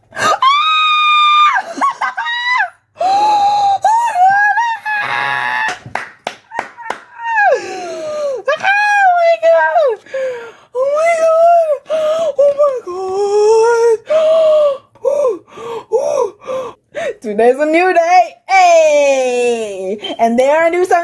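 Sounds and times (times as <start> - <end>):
woman squealing and shrieking: 0.2 - 5.8, 6.8 - 10.0
sharp hand claps: 5.7 - 7.2.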